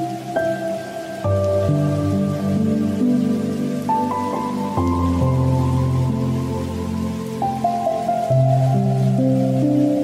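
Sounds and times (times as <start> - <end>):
rain falling: 0.0 - 10.0
soft instrumental music: 0.0 - 10.0.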